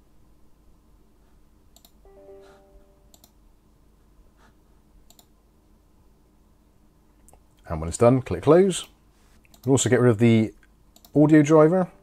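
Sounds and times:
soft electronic tone: 0:02.0 - 0:03.3.

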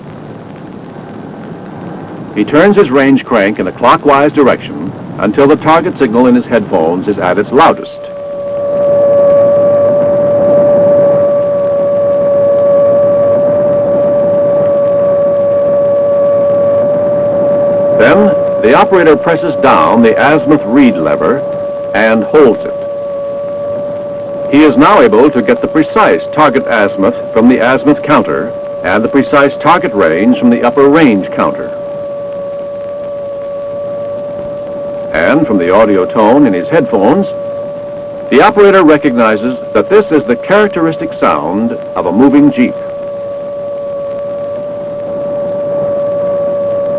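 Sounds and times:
radar signal steady tone: 0:00.0 - 0:46.9.

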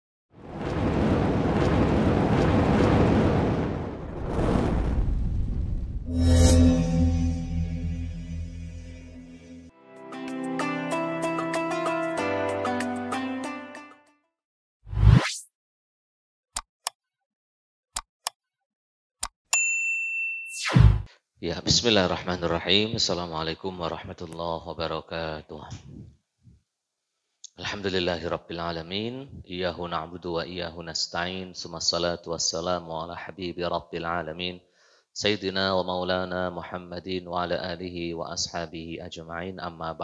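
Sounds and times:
ambient music tones: 0:06.1 - 0:10.2
notification bell ding: 0:19.6 - 0:20.6.

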